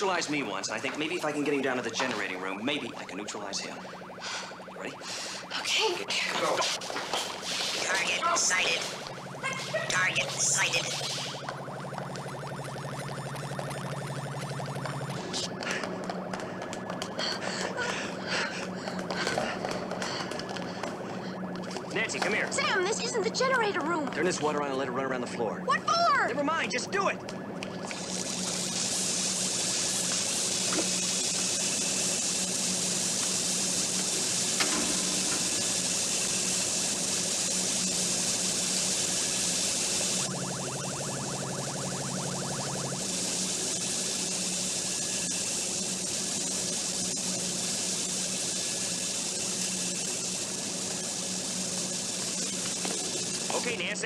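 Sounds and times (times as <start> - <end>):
water rushing from a tap: 0.0 - 15.8, 16.8 - 24.6, 27.7 - 54.0
low steady hum: 0.0 - 54.0
rapid electronic pulsing: 0.0 - 54.0.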